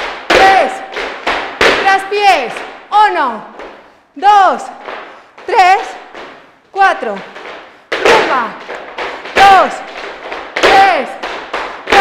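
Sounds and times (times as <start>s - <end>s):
shoes stamping on wooden floor: 3.4s - 12.0s.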